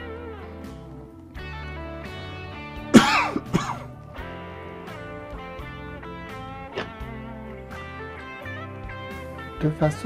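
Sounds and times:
guitar music: 0.0 - 10.0
man coughing: 3.0 - 3.9.

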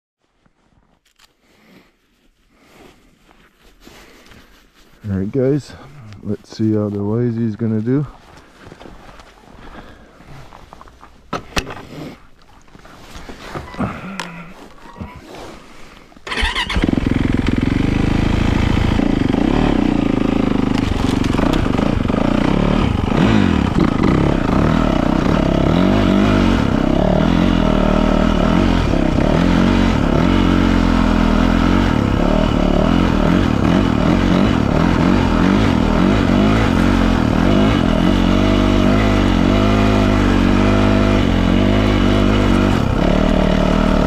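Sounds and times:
footsteps in snow: 0.2 - 11.3, 12.3 - 16.2
dirt bike engine accelerating: 16.2 - 44.0.

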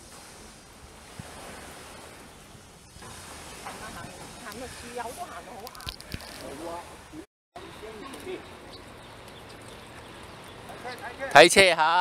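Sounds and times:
sea on rocky shore: 0.0 - 12.0
wind: 0.0 - 12.0.

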